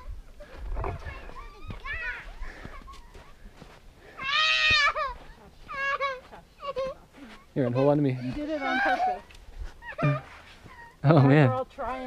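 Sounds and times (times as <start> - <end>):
children's voices: 0.0 - 3.6
child crying: 1.0 - 3.4, 4.2 - 11.5
child whimpering: 8.2 - 11.5.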